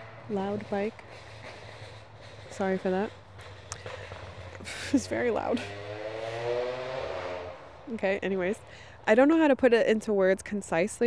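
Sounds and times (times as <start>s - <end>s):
loud motorcycle passing: 0.0s - 8.8s.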